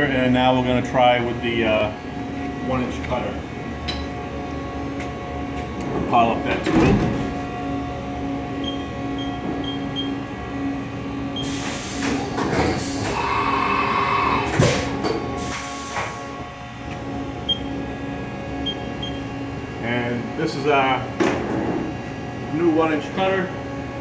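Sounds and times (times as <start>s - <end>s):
milling machine hum: 0.0s - 21.2s
machine whirring: 7.3s - 21.2s
air hiss: 15.4s - 16.2s.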